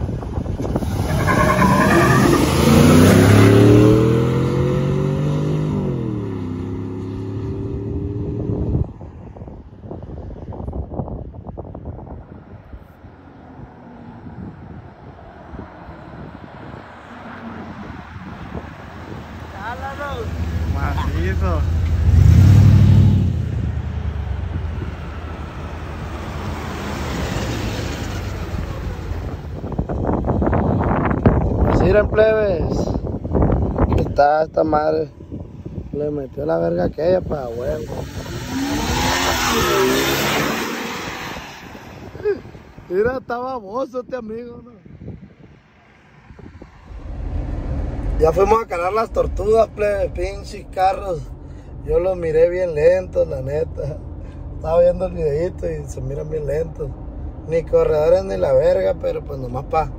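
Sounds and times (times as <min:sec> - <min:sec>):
vehicles passing close: 0:00.0 - 0:59.9
engines accelerating hard: 0:00.6 - 0:08.9, 0:15.4 - 0:34.1, 0:36.8 - 0:42.9.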